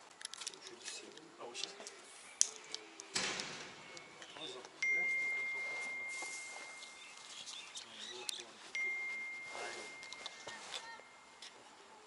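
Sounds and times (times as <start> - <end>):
high-pitched pure tone: 4.8 - 7.3.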